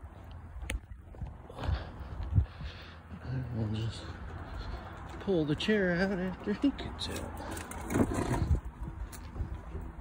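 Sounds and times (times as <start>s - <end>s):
footsteps on asphalt: 0.0s - 10.0s.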